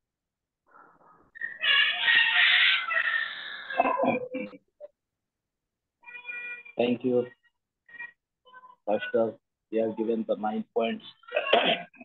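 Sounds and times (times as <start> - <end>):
rooster crowing: 1.7 - 3.5.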